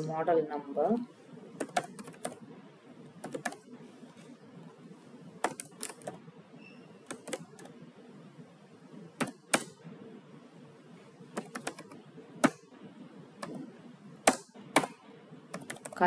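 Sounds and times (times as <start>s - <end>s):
keyboard keys clicking: 1.6s - 2.4s, 3.2s - 3.6s, 5.4s - 6.2s, 7.1s - 7.7s, 11.3s - 12.0s, 15.5s - 16.0s.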